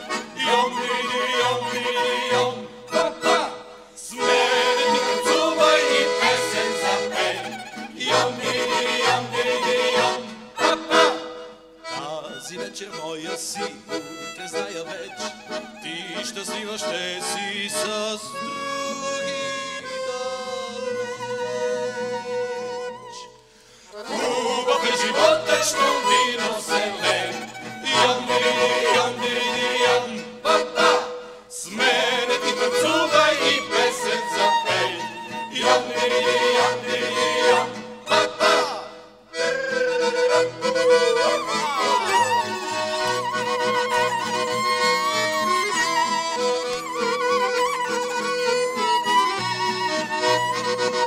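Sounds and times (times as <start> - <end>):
people singing: 0.0 - 11.4, 16.4 - 22.4, 24.0 - 39.0
instrumental accompaniment: 0.0 - 51.0.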